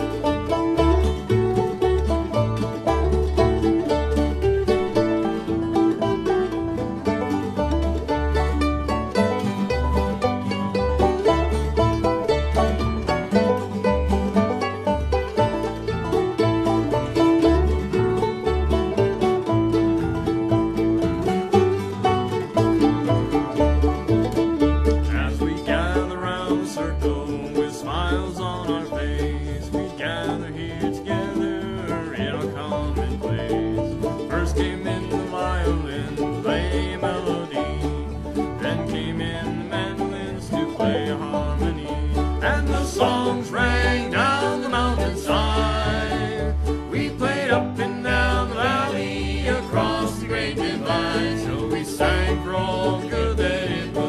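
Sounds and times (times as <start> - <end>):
banjo picking: 0.0 - 54.0
guitar picking: 0.0 - 54.0
steady bass line: 0.0 - 54.0.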